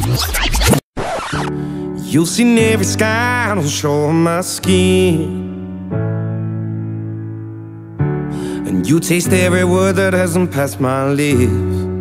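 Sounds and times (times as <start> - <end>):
scratchy rewind transition effect: 0.0 - 1.6.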